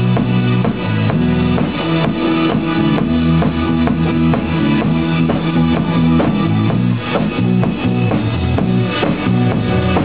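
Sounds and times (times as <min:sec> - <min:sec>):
drum kit beat: 0:00.0 - 0:10.0
guitar: 0:00.0 - 0:10.0.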